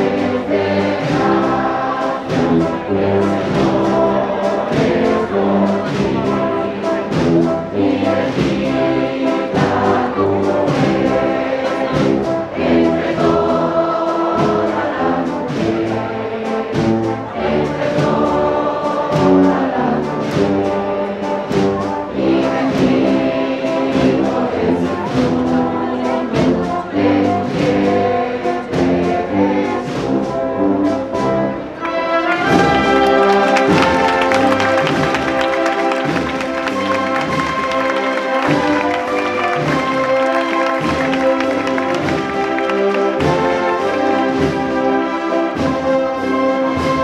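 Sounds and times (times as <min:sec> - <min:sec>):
brass band playing a slow march: 0:00.0 - 0:47.0
steady drum beats: 0:00.0 - 0:47.0.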